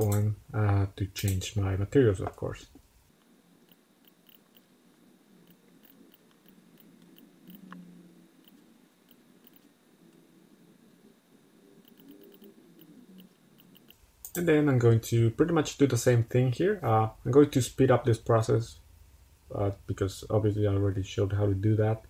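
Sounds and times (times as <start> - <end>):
computer mouse clicks: 3.2 - 4.7, 5.5 - 7.8, 8.4 - 10.2, 11.8 - 14.4.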